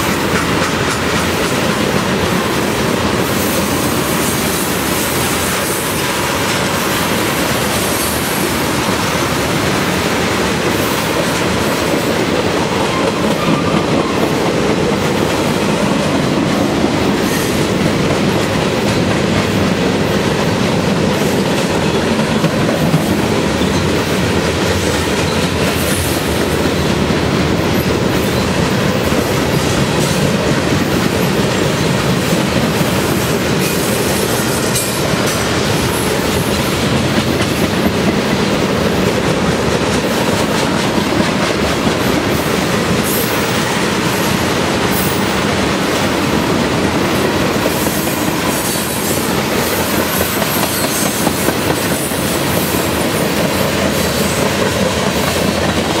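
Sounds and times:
freight train wheels rumbling: 0:00.0 - 0:56.0
wheels clicking over rail joints: 0:00.0 - 0:56.0.

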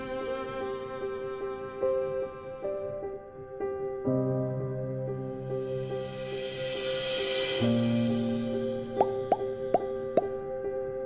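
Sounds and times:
rising pop sound effects: 0:09.0 - 0:10.4.

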